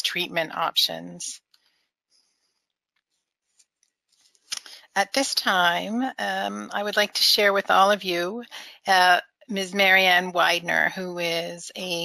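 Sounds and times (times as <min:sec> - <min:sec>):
woman speaking: 0:00.0 - 0:01.4, 0:04.6 - 0:12.0
breath: 0:01.6 - 0:02.8.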